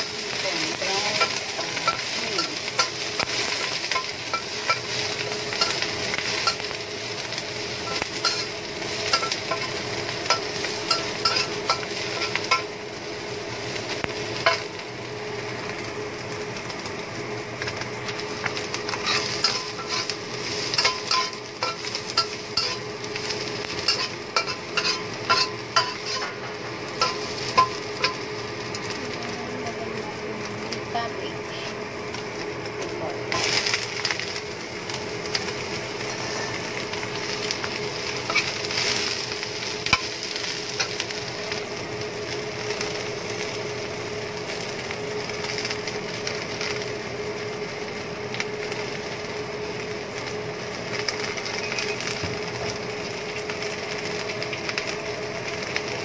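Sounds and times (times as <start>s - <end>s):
constant hum: 0.0s - 56.0s
frying in hot oil: 0.0s - 56.0s
spatula scraping a wok: 0.7s - 12.7s, 18.5s - 28.9s, 36.0s - 41.3s.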